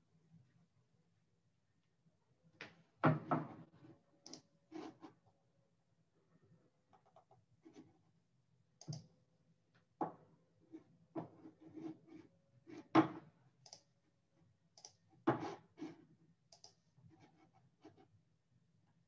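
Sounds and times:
mouse and keyboard clicks: 4.2 - 4.5, 8.8 - 9.1, 13.6 - 13.9, 14.8 - 15.0, 16.5 - 16.8.

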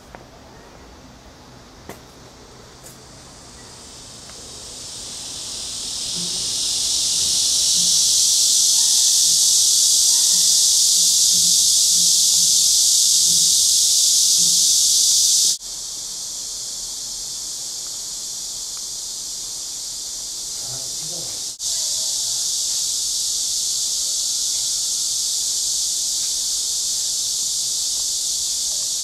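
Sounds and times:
cicadas buzzing: 0.6 - 29.0.

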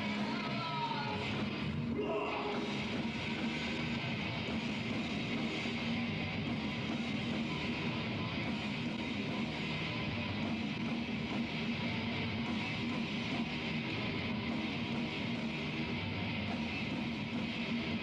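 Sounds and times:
bass guitar: 0.0 - 18.0
distorted electric guitars: 0.0 - 18.0
drums: 0.0 - 18.0.

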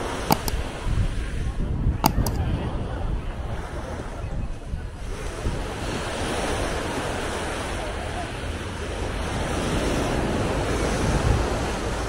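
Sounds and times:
wind buffeting microphone: 0.0 - 12.0
surf washing up sand: 3.4 - 12.0.

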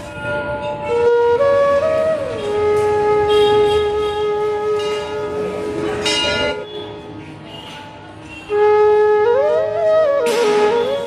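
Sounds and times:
bell ringing: 6.0 - 6.8.

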